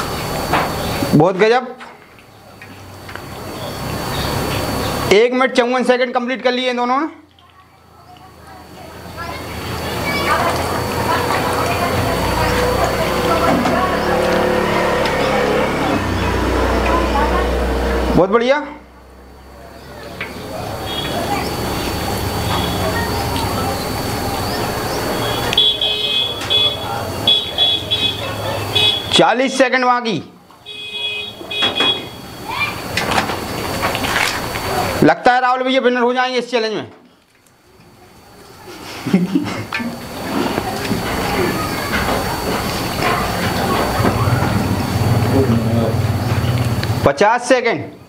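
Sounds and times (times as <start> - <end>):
steady background noise: 0.0 - 48.0
faint voices: 7.3 - 29.4, 30.3 - 35.1, 37.6 - 47.2
low motor hum: 8.2 - 29.1, 38.2 - 47.1
high-pitched electronic beeping: 20.2 - 29.2.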